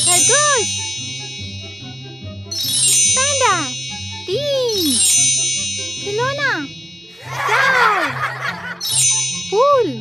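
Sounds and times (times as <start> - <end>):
background music with low beat: 0.0 - 10.0
bell-like ding: 0.0 - 10.0.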